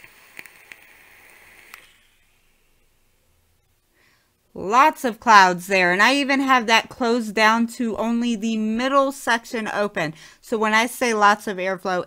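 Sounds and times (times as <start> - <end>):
small clicks: 0.0 - 2.1
faint airflow hiss: 0.0 - 11.7.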